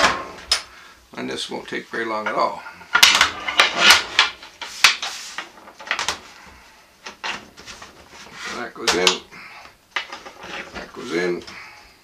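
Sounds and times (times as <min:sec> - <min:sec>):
quiet rubbing: 0:01.9 - 0:11.6.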